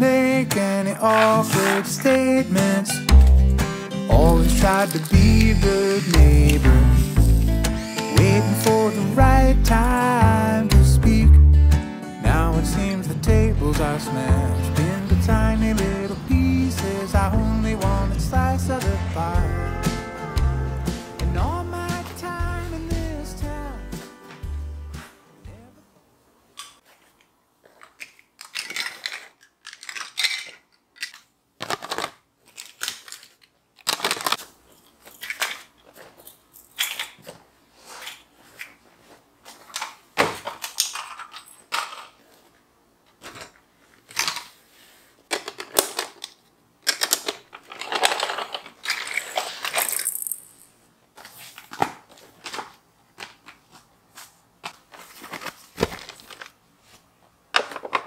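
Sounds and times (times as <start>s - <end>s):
plastic toys clattering: 0.0s - 9.2s, 26.6s - 38.8s, 39.5s - 53.7s, 54.6s - 56.6s, 57.5s - 58.0s.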